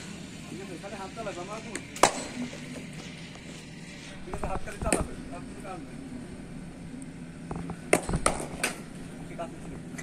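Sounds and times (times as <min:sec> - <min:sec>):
low background noise: 0:00.0 - 0:10.0
cricket bat striking ball: 0:02.0 - 0:02.3, 0:07.9 - 0:08.8.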